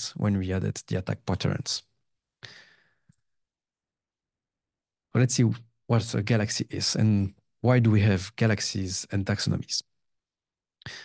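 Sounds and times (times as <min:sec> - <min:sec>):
short breath: 0:02.4 - 0:03.2.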